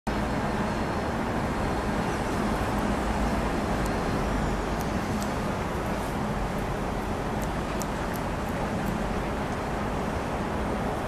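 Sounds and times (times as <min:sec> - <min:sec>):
road traffic noise: 0:00.1 - 0:11.0
faint high ticks: 0:04.7 - 0:05.4.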